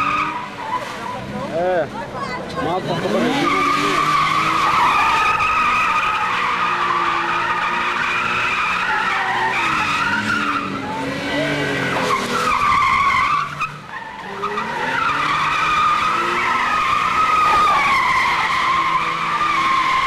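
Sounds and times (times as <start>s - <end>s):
car engine: 0.0s - 20.0s
car tyres squealing: 0.0s - 20.0s.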